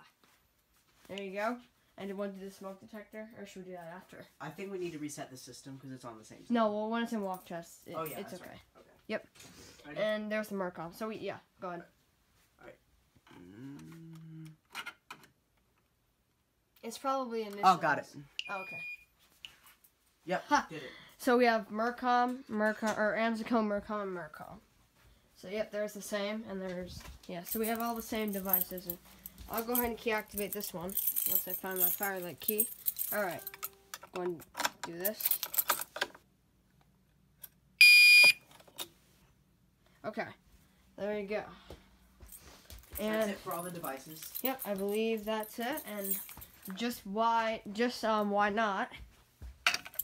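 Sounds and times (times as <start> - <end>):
person humming low: 13.3 - 14.6.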